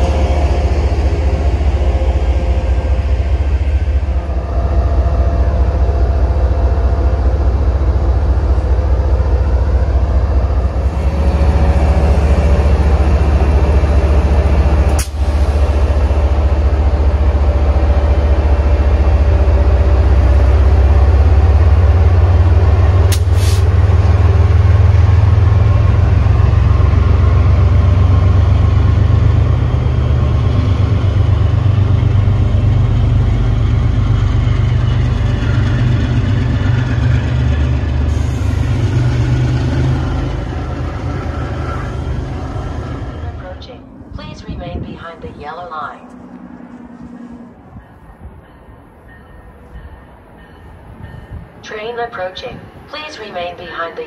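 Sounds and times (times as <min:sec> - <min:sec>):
diesel locomotive engine rumble: 0:00.0 - 0:54.0.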